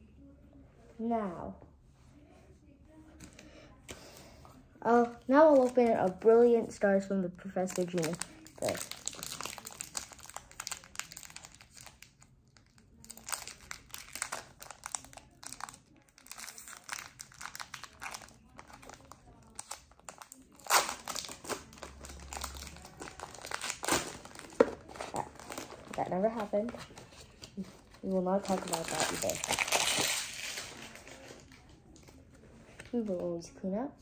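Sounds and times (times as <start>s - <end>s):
foil wrapper crinkling and tearing: 7.6s - 26.7s, 28.2s - 31.6s.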